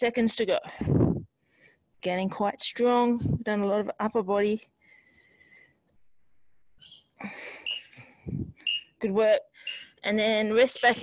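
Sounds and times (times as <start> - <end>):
woman breathing hard: 4.8 - 5.8.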